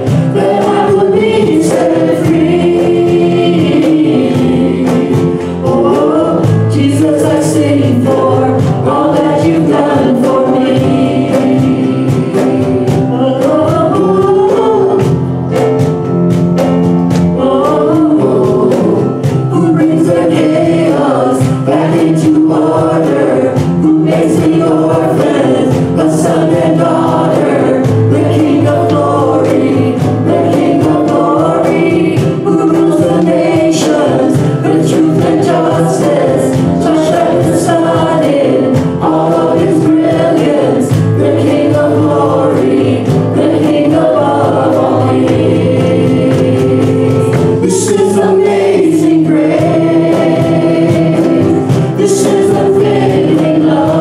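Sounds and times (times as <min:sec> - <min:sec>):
congregation singing: 0:00.0 - 0:54.0
electric keyboard: 0:00.0 - 0:54.0
praise band playing: 0:00.0 - 0:54.0
man singing into microphone: 0:17.3 - 0:42.4, 0:45.8 - 0:54.0.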